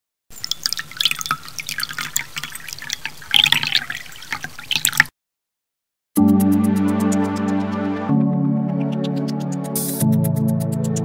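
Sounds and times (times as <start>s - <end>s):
water drops falling into water: 0.3s - 5.1s.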